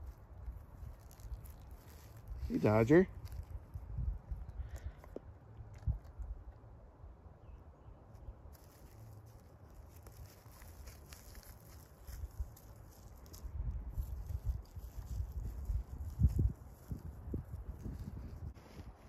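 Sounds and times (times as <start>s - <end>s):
dog rustling through dry grass: 0.0s - 4.2s, 8.5s - 19.0s.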